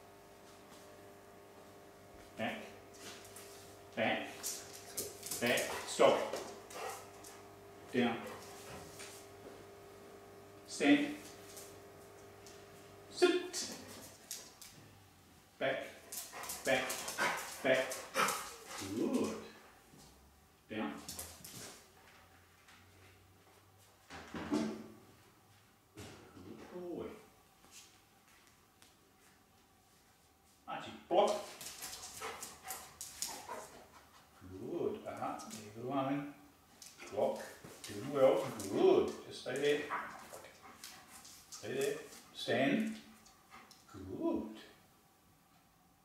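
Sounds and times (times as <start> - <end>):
dog running on tiled floor: 4.3 - 7.4, 8.2 - 9.2, 16.0 - 19.4, 21.0 - 21.8, 31.3 - 34.0, 36.8 - 42.3.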